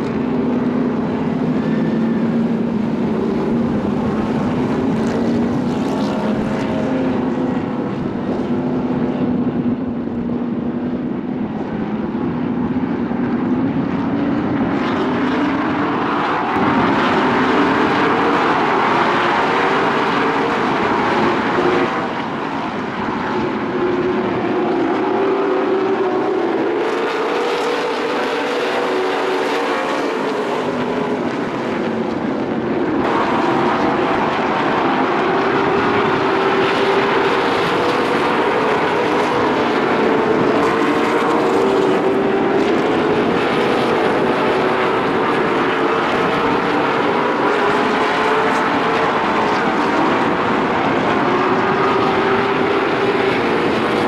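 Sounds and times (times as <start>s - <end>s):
race car engines droning: 0.0s - 54.0s.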